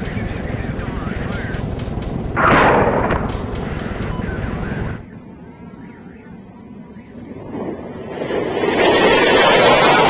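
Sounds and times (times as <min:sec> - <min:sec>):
faint radio voices: 0:00.0 - 0:01.8, 0:03.6 - 0:07.3
aircraft engines droning: 0:00.0 - 0:10.0.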